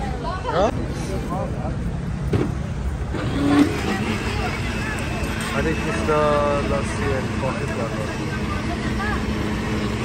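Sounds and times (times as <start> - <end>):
electric blender running: 3.1 - 10.0.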